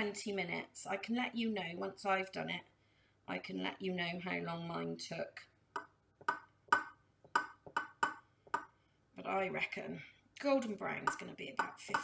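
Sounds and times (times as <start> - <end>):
taps on metal muffin tin: 5.8 - 8.7, 11.0 - 12.0.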